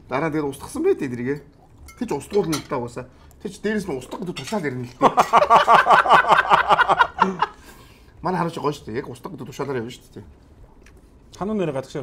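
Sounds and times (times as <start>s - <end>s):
cutlery and dishes clinking: 1.3s - 2.8s, 4.1s - 5.0s
man talking: 11.3s - 12.0s.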